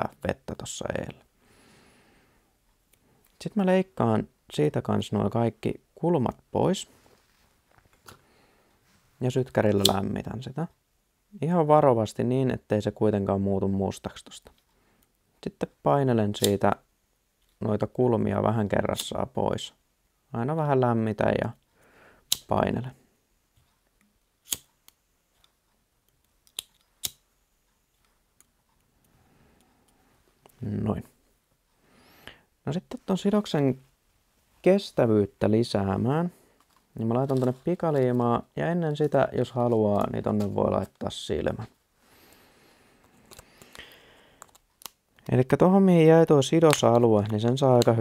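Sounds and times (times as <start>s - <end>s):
pocket lighter clicks: 24.4s - 24.7s, 26.4s - 27.2s.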